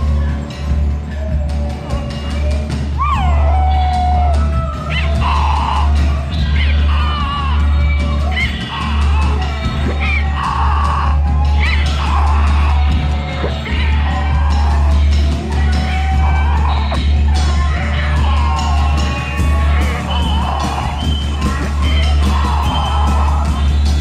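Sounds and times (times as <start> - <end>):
drums: 0.0 - 24.0
sliding vocal yells and whoops: 2.9 - 23.9.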